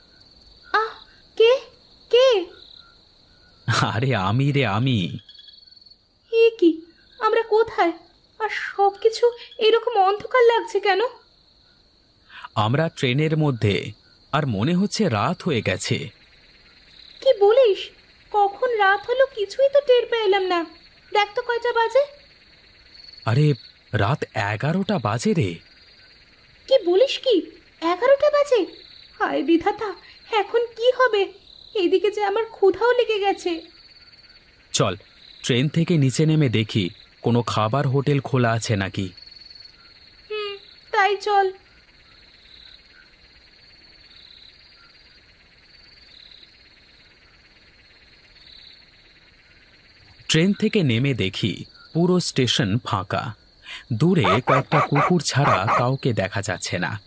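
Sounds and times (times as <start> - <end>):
frog calling: 0.0 - 57.0
high cricket trill: 0.0 - 57.0
rising and falling voice-like calls: 54.2 - 56.0.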